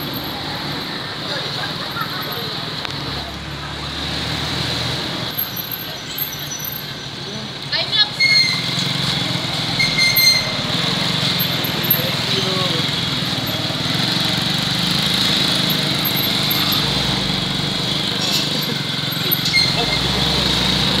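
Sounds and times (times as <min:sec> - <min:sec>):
small motorcycle engines running: 0:05.1 - 0:21.0.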